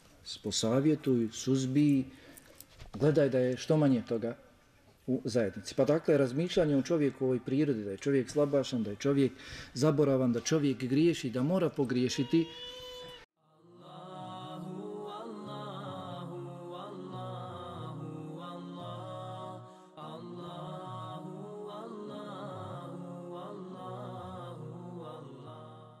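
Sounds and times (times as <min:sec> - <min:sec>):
voices chanting long notes: 0:13.5 - 0:26.0.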